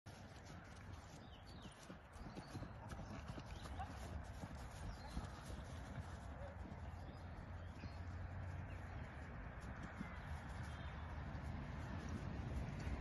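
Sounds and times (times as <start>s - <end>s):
horse hooves cantering on grass: 0.1s - 13.0s.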